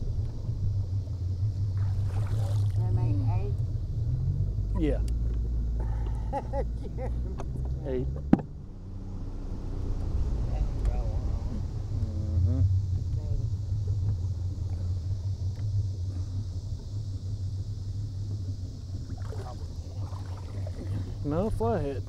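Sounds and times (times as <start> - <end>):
boat motor rumbling: 0.0 - 22.0.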